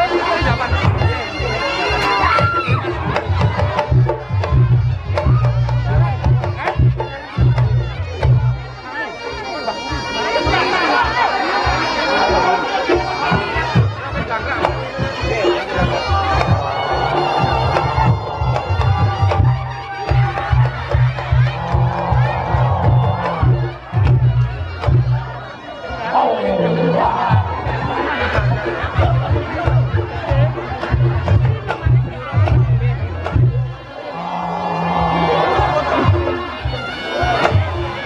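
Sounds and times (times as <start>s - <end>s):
crowd talking: 0.0s - 38.0s
shawm playing reedy melody: 12.7s - 32.4s
drums beating: 13.3s - 25.3s, 25.9s - 38.0s.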